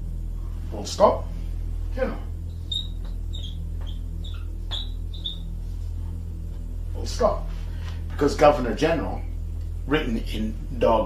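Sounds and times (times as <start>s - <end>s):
steady low hum: 0.0s - 11.0s
short high-pitched chirps: 2.5s - 5.5s.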